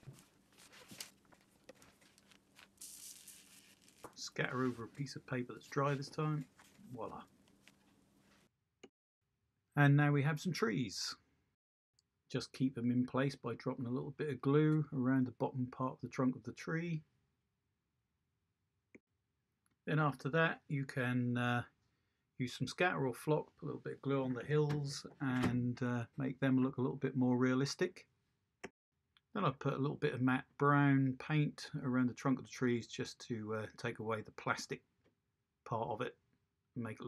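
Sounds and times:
rustling of newspaper: 0.0 - 8.5
short hiss: 2.7 - 4.1
man talking: 4.1 - 7.3, 9.8 - 11.2, 12.3 - 17.0, 19.9 - 21.7, 22.4 - 28.0, 29.4 - 34.8, 35.7 - 36.1, 36.8 - 37.0.

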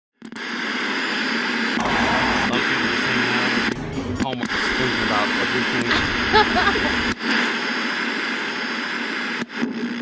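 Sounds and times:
loud static hiss: 1.8 - 10.0.

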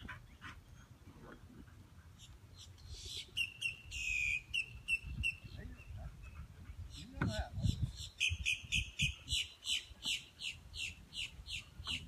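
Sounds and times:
bird chirping: 2.2 - 12.0.

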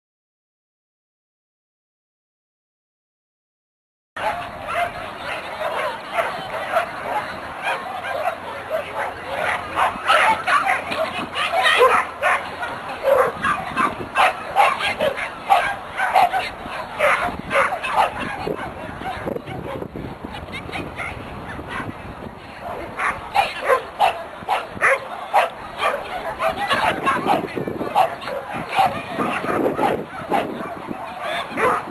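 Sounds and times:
dog barking: 4.2 - 19.8, 21.0 - 21.9, 22.6 - 31.9.

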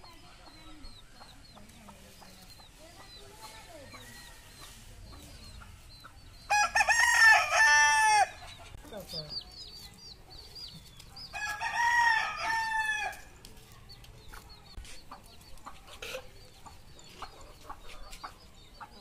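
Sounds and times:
rooster crowing: 6.5 - 8.4, 11.4 - 13.2.

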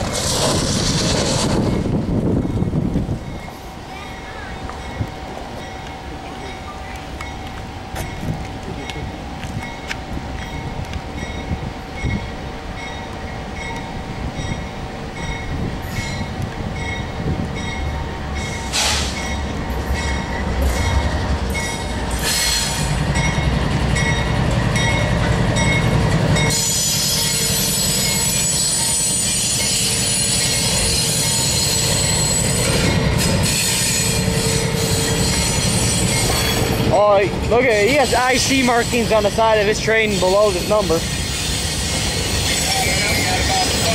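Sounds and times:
train wheels squealing and clattering: 0.0 - 14.6, 15.2 - 43.9
diesel locomotives rumbling: 0.0 - 43.9.

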